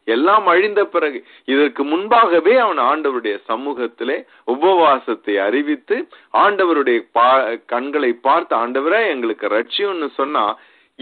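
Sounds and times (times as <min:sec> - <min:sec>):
man preaching: 0:00.0 - 0:10.7.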